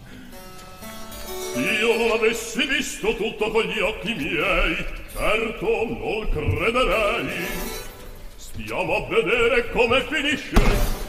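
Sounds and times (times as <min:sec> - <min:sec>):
man singing recitative: 0:01.6 - 0:07.8, 0:08.4 - 0:10.8.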